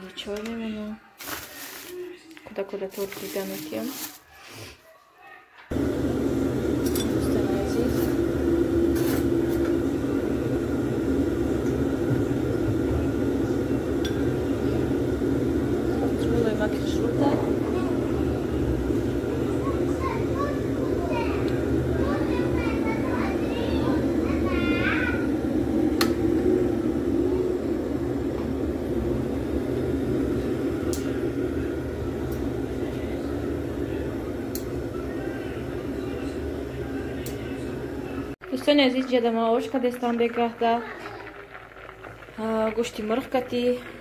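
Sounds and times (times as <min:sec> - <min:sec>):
kettle heating water rumble: 0:05.7 - 0:44.0
low mechanical hum: 0:05.7 - 0:44.0.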